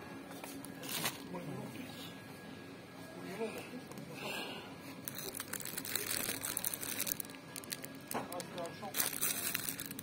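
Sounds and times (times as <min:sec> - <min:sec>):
plastic wrapping crinkling: 0:05.0 - 0:10.0.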